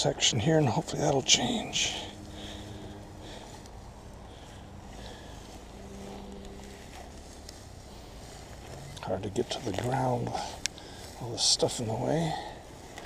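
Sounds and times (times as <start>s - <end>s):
dry grass rustling: 0.0s - 13.0s.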